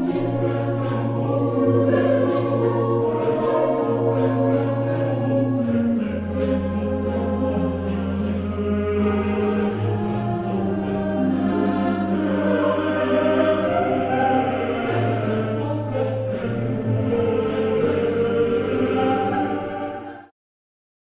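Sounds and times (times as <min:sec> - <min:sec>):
choir singing: 0:00.0 - 0:20.3.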